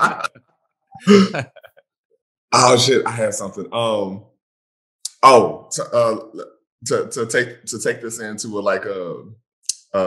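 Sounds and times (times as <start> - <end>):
man clearing throat: 0.0 - 0.3.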